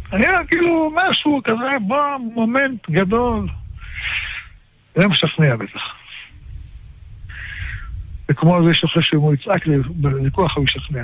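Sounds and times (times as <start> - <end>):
low rumble: 0.0 - 1.4, 3.0 - 4.6, 6.3 - 8.9
man breathy hiss: 3.7 - 4.6, 6.1 - 8.0.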